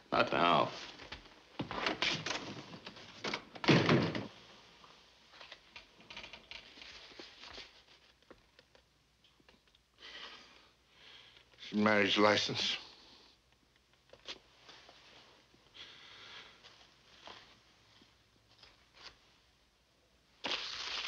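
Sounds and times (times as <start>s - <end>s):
door closing with a thud: 3.6s - 4.3s.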